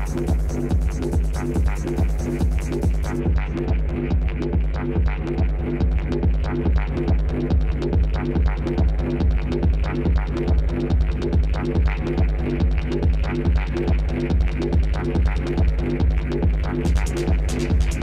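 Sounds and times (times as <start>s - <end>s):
electronic dance music: 0.0s - 18.0s.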